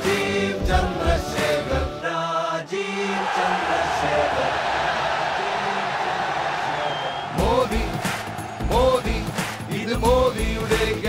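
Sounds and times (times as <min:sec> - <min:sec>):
song over loudspeaker: 0:07.4 - 0:11.0.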